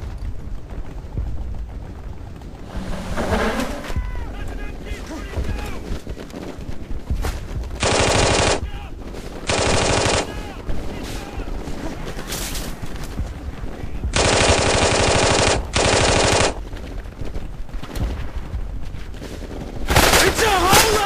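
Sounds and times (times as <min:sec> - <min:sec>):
machine-gun fire bursts: 0:04.8 - 0:21.0.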